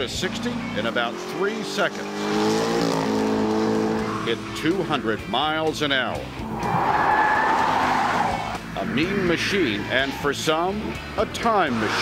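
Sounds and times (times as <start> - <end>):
car engine revving hard: 0.0 - 5.1, 6.4 - 12.0.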